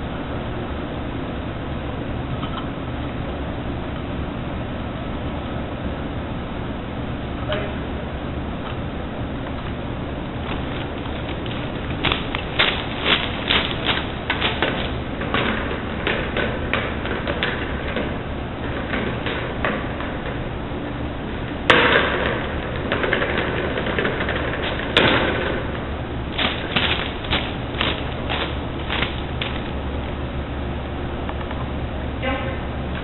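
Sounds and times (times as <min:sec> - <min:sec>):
steady hum: 0:00.0 - 0:33.0.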